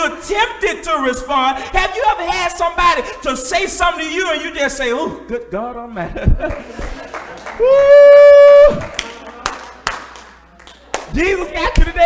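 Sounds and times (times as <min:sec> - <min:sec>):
sharp hand claps: 0:08.6 - 0:11.8.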